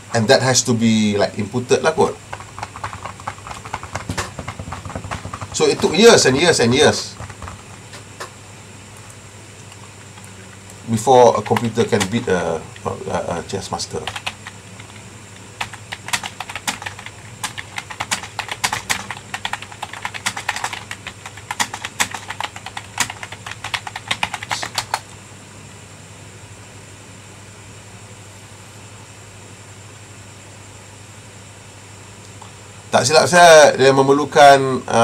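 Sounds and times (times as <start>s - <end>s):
faint steady hum: 0.0s - 35.0s
keyboard typing clicks: 2.3s - 6.4s, 7.1s - 8.3s, 14.0s - 15.0s, 15.6s - 25.0s.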